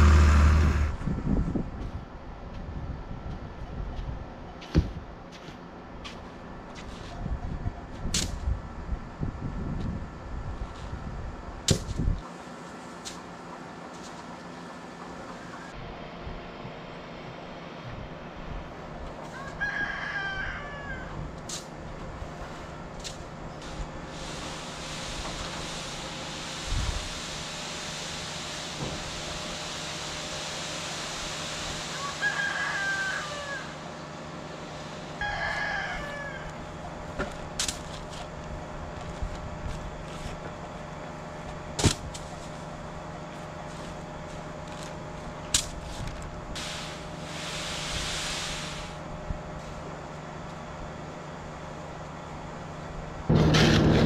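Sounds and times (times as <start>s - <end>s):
steady low hum: 0.0s - 19.4s, 33.6s - 54.0s
hiss: 23.6s - 33.9s, 46.5s - 49.1s.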